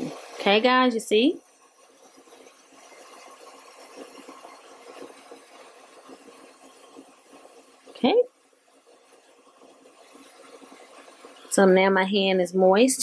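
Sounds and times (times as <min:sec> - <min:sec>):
steamer hissing: 0:00.0 - 0:13.0
water boiling pops: 0:00.0 - 0:13.0.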